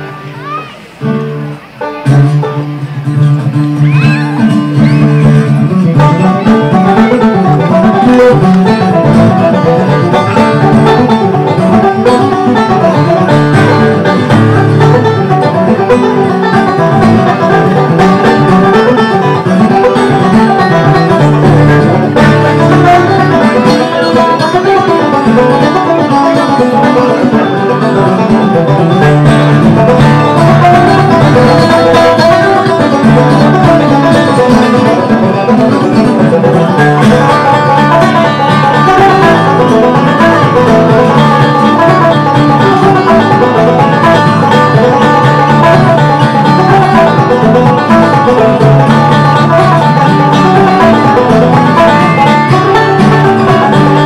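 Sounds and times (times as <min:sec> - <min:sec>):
acoustic guitar: 0:00.0 - 0:54.0
banjo: 0:00.0 - 0:54.0.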